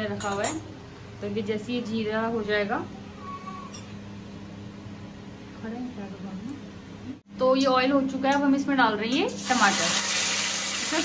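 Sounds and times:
steady low hum: 0.0s - 9.2s
faint high tone: 3.2s - 3.8s
seeds sizzling in hot oil: 9.4s - 11.0s.

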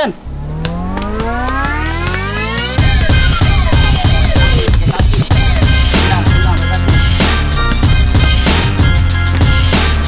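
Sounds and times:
rising synth sweep: 0.2s - 3.7s
low bass drone: 0.2s - 4.7s.

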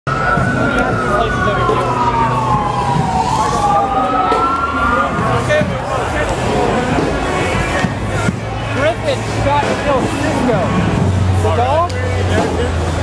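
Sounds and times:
emergency vehicle siren wailing: 0.1s - 11.4s
low rumble of street noise: 0.1s - 13.0s.

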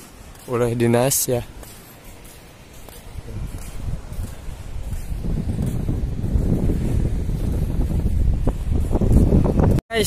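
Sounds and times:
wind buffeting microphone: 2.6s - 10.0s.

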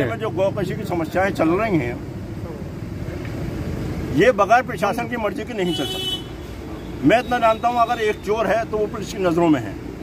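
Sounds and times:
low rumble of street traffic: 0.0s - 10.0s.

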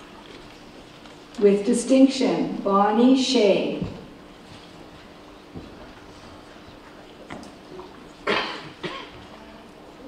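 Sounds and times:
person coughing: 8.2s - 9.2s.

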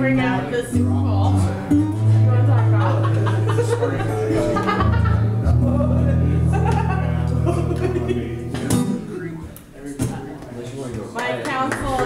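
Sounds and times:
acoustic guitar notes and strum: 0.0s - 10.2s.

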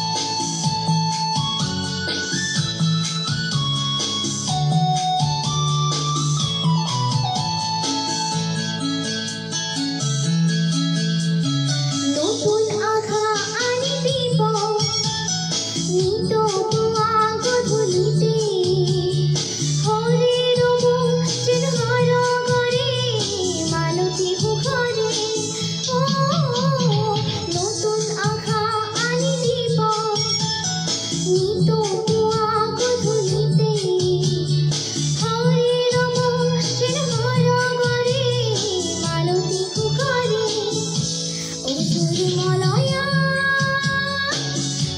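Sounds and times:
instrumental backing music: 0.0s - 44.9s
girl singing a melody: 11.7s - 44.9s.

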